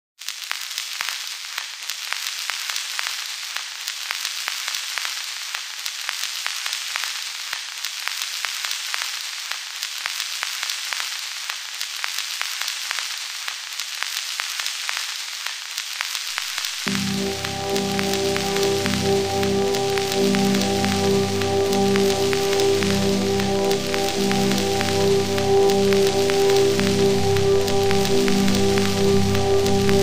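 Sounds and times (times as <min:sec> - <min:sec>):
steady high hiss: 0:08.5 - 0:30.0.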